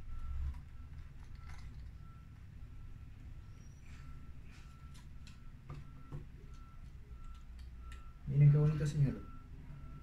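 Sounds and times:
quiet repeating beep: 0.0s - 10.0s.

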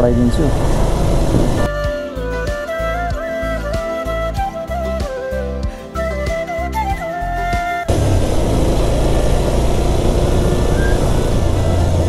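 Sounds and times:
loud wind rush on microphone: 0.0s - 1.7s
motorcycle engine hum: 0.0s - 1.7s, 7.9s - 12.0s
background music with steady beat: 0.0s - 7.9s.

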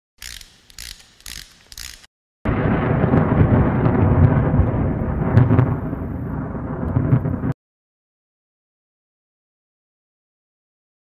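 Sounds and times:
ratcheting gear clicks: 0.2s - 2.1s.

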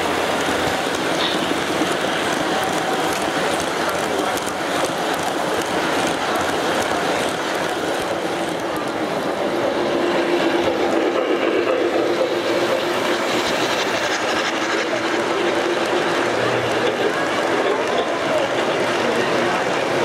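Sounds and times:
background chatter: 0.0s - 20.0s
model train wheels rumbling: 0.0s - 20.0s.

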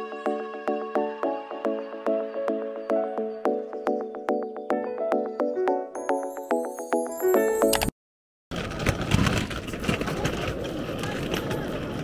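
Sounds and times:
street traffic rumble: 8.6s - 12.0s.

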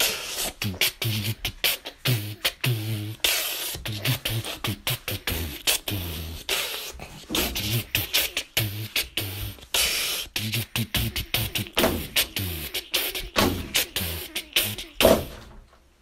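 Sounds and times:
beatboxing: 0.0s - 15.6s.

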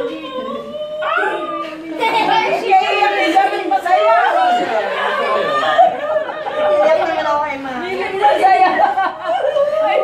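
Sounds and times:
excited overlapping chatter: 0.0s - 10.0s.

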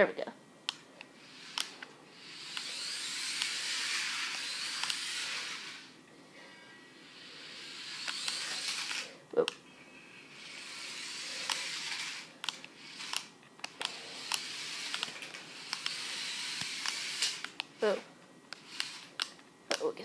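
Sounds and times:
toy car motors whirring: 1.1s - 6.0s, 7.0s - 19.9s.

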